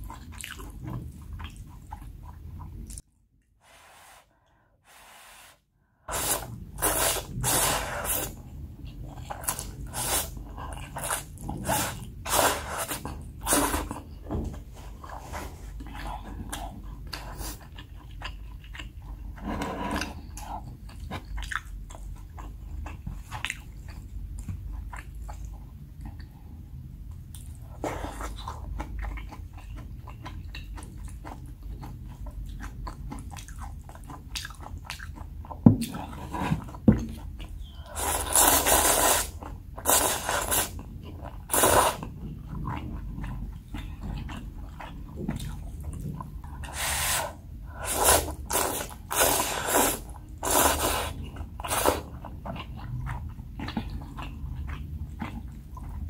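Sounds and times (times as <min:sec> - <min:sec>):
wet chewing: 0:20.0 - 0:26.3, 0:27.0 - 0:56.0.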